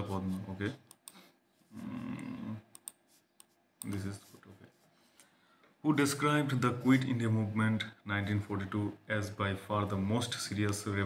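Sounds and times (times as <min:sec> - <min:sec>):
computer mouse clicks: 0:00.8 - 0:01.2, 0:02.6 - 0:04.1
man saying mm: 0:01.7 - 0:02.7.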